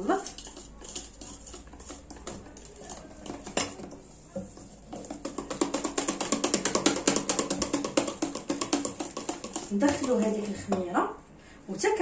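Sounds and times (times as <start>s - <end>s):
whisk clicking against metal bowl: 0.0s - 10.9s.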